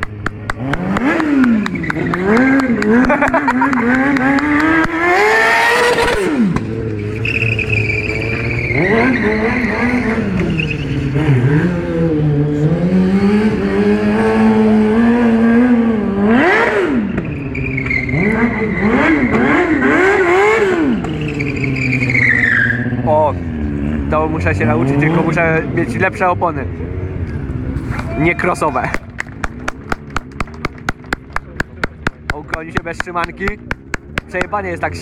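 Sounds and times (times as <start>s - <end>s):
motorcycle engine revving: 0.0s - 27.2s, 29.0s - 35.0s.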